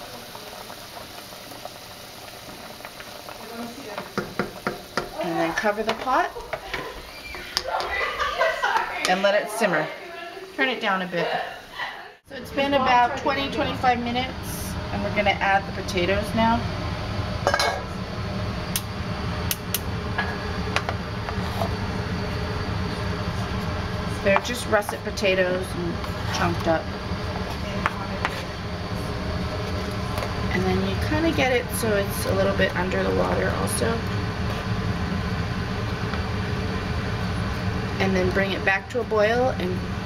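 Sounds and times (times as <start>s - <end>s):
spoon and potatoes knocking pot: 4.0s - 5.2s.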